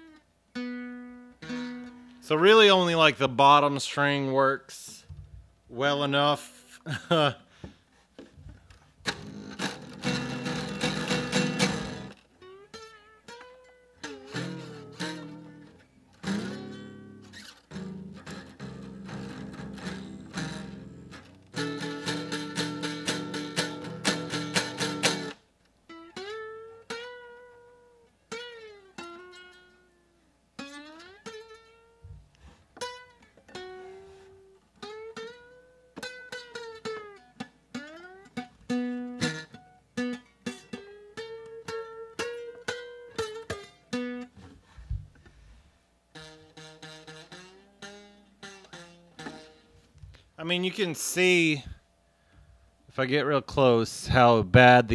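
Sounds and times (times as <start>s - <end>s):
nylon-string guitar playing: 0.0s - 3.6s, 8.4s - 52.3s, 53.6s - 54.9s.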